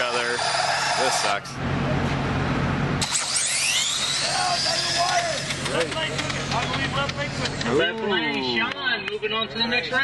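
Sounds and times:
rc car motors whining: 0.0s - 1.6s, 3.0s - 7.9s
spectators' voices: 4.1s - 10.0s.

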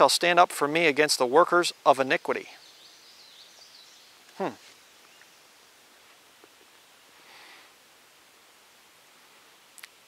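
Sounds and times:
faint outdoor background hush: 0.0s - 10.0s
man's short hmm: 4.4s - 4.7s.

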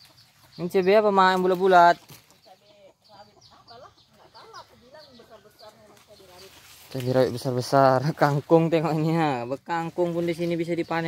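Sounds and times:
chickens clucking: 0.0s - 11.0s.

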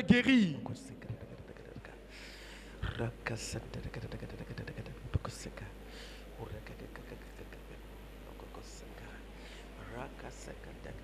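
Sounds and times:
whispers with sharp hisses: 0.9s - 11.0s.

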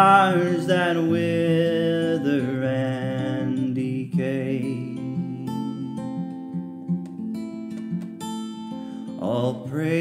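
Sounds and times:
person singing a hymn: 0.0s - 6.4s, 9.2s - 10.0s
acoustic guitar: 0.0s - 10.0s.

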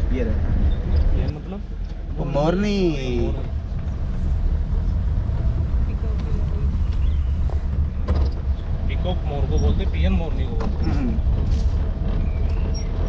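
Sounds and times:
jeep engine and road rumble: 0.0s - 13.0s.

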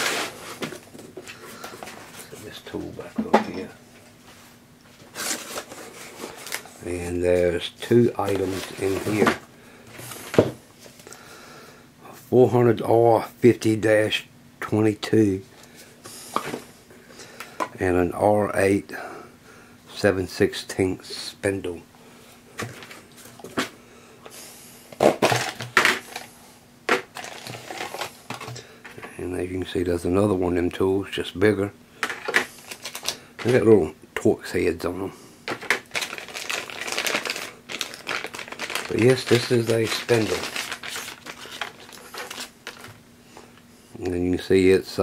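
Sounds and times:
cardboard flaps rustling: 8.2s - 9.4s
contents scuffing in box: 8.2s - 9.4s.

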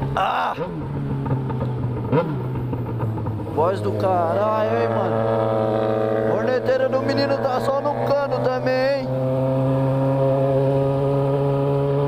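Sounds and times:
motorcycle engine rev: 0.0s - 12.0s
motorcycle engines running: 0.0s - 12.0s.

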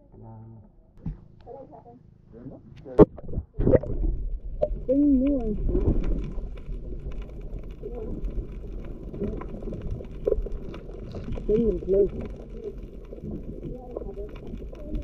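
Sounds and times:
muffled underwater rumble: 0.0s - 15.0s.

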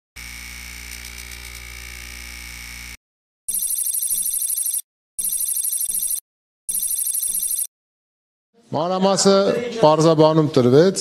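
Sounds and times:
warbling telephone ring: 3.5s - 7.7s.

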